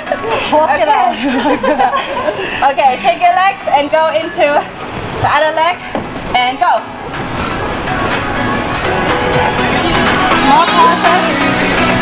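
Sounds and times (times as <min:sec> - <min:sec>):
women laughing: 0:00.0 - 0:02.6
electronic background music: 0:00.0 - 0:12.0.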